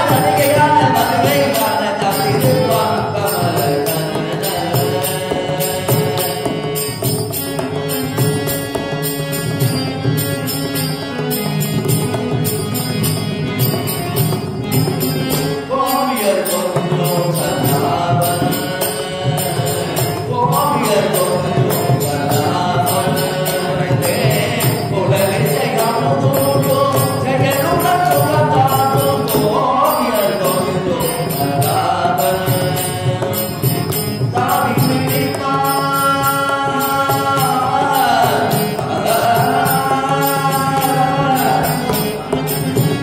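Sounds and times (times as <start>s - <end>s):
man singing chant-like line: 0.0s - 10.9s, 15.2s - 43.0s
harmonium: 0.0s - 43.0s.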